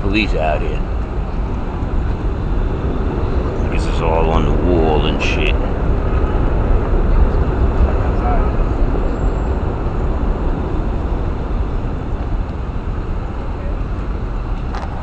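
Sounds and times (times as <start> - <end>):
low traffic rumble: 0.0 - 15.0.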